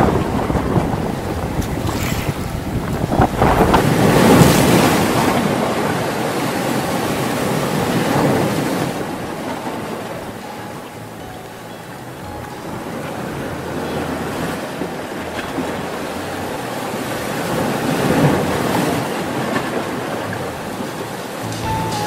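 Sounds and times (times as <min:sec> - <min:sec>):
wind buffeting microphone: 0:00.0 - 0:11.1
small waves lapping on shore: 0:00.0 - 0:22.0.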